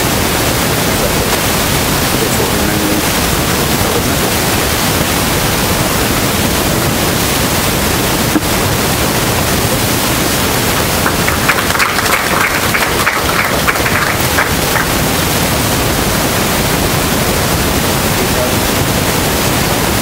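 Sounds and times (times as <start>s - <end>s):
loud steady hiss: 0.0s - 20.0s.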